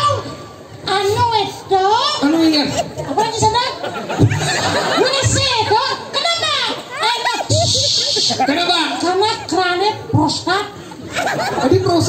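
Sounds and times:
person talking rapidly: 5.0 - 10.5.

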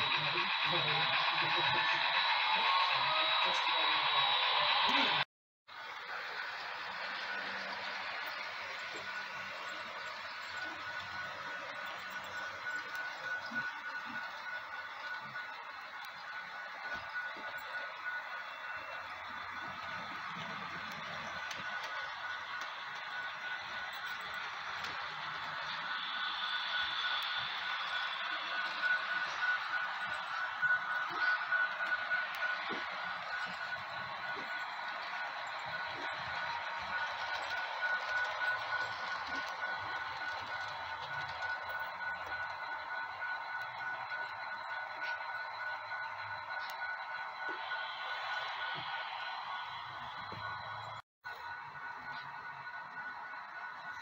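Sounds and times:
high whine: 0.0 - 54.0
metal wheels rolling on rails: 0.0 - 54.0
model train motor whirring: 0.0 - 54.0.

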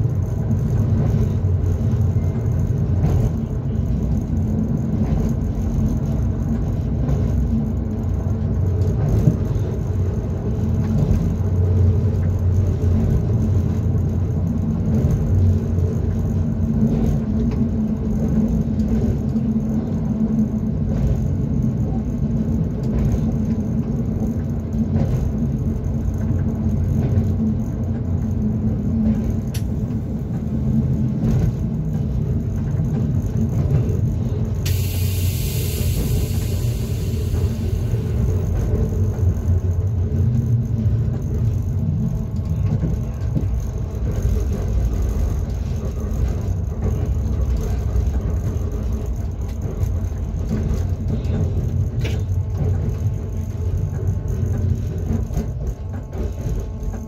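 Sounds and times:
train wheels rumbling on rail: 0.0 - 57.0
hiss: 34.6 - 38.3.

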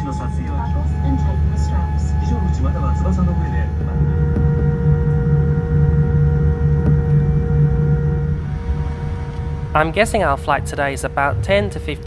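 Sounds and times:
aircraft cabin low rumble: 0.0 - 12.0
steady whining tones: 0.0 - 12.0.

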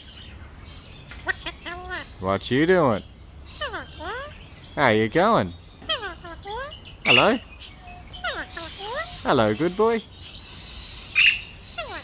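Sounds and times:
parakeet harsh call: 1.2 - 2.2, 3.5 - 4.5, 5.8 - 12.0.

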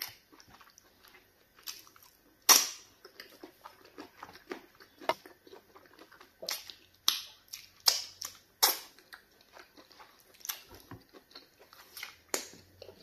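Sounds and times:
wet chewing: 0.0 - 13.0
lip smacks: 6.4 - 9.2.

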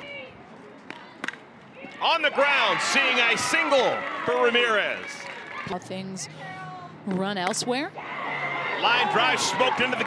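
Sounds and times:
ballpark crowd noise: 0.0 - 10.0.

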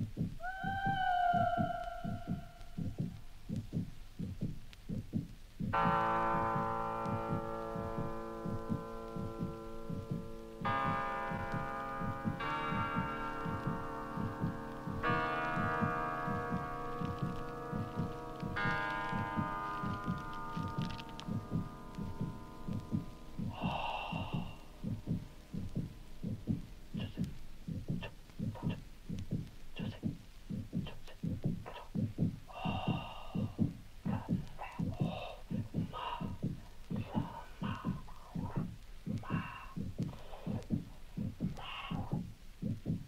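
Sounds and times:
low throbbing pulse: 0.0 - 43.0
sustained electronic chords: 5.8 - 23.6.

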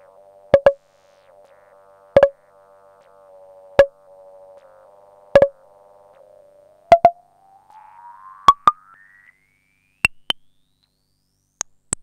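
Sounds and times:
synthesizer pitched pings: 5.4 - 5.6, 6.9 - 9.4
thin tone gliding upward: 6.7 - 10.1.

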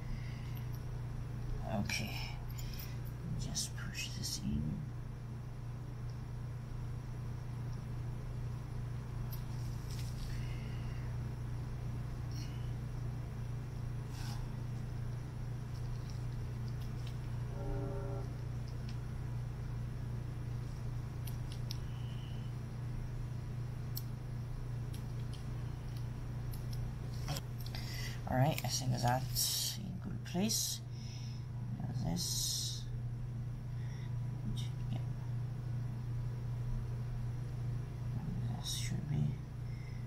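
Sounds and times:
steady low hum: 0.0 - 40.0.

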